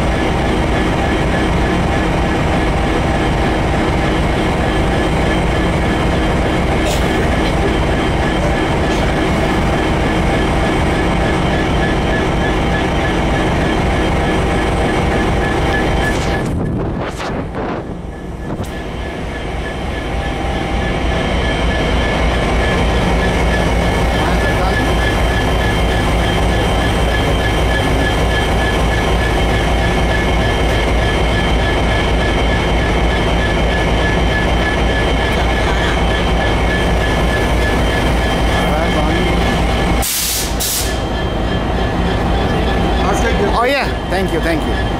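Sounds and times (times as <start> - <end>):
train rail rumble: 0.0 - 44.9.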